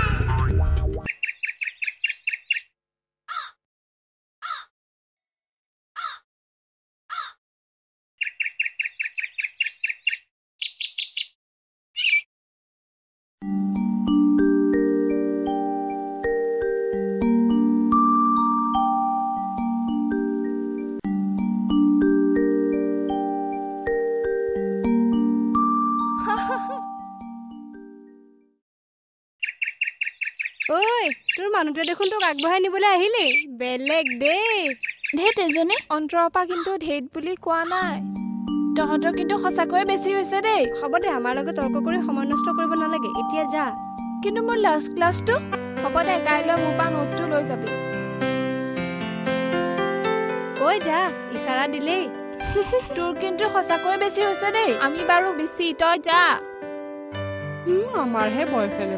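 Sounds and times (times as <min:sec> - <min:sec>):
bird chirping: 0:01.1 - 0:03.6, 0:08.2 - 0:12.3, 0:29.4 - 0:36.8
person speaking: 0:30.7 - 0:38.1, 0:38.7 - 0:47.8.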